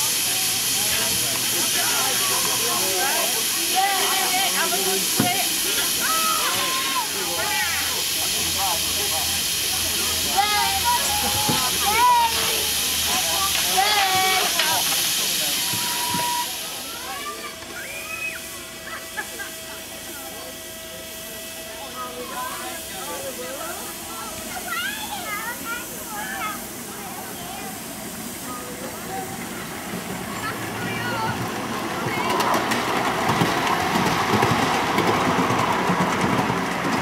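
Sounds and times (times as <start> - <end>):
people talking: 0.0 - 35.7
steam hissing loudly: 0.0 - 37.0.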